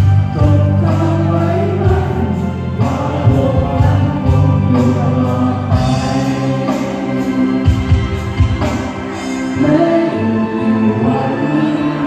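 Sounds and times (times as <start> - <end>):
backing music with heavy bass: 0.0 - 12.0
group singing together: 0.0 - 12.0.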